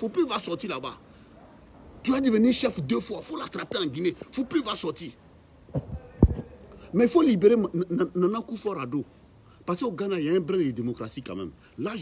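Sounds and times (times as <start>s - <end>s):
thumps on phone microphone: 5.7s - 6.5s.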